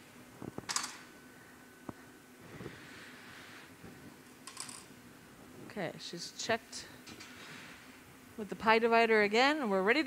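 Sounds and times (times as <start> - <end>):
hot shop background noise: 0.0 - 8.6.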